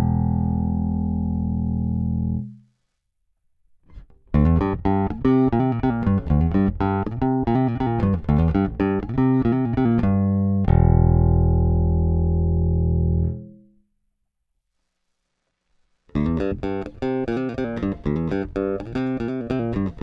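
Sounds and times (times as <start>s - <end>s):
electric bass notes: 0.0s - 2.7s, 3.9s - 13.8s, 16.1s - 20.0s.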